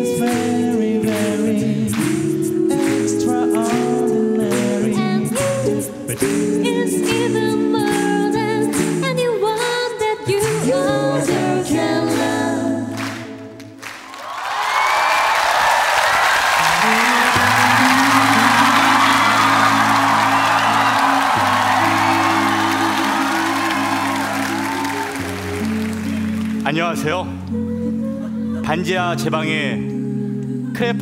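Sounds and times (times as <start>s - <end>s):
woman singing into microphone: 2.4s - 13.0s, 16.9s - 26.1s, 27.3s - 31.0s
audience applauding: 13.0s - 27.0s.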